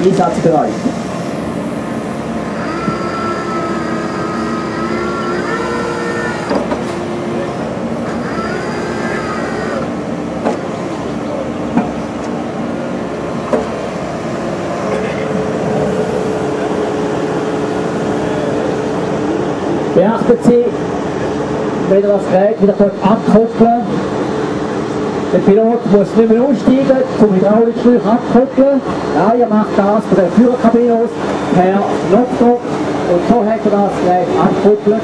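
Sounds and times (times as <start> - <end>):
hydraulic whine: 0.0 - 22.1
excavator diesel engine running: 0.0 - 35.0.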